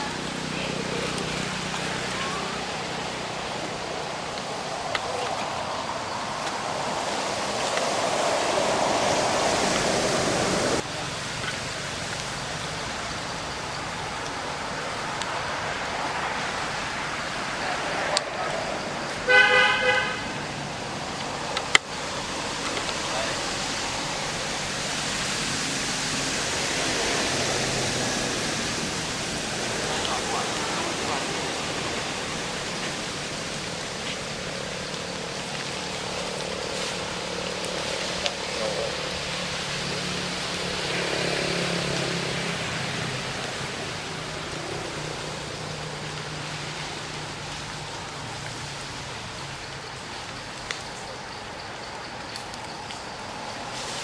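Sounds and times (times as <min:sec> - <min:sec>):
faint distant voices: 0:00.0 - 0:21.5, 0:26.2 - 0:35.2
outdoor background hiss: 0:00.0 - 0:54.0.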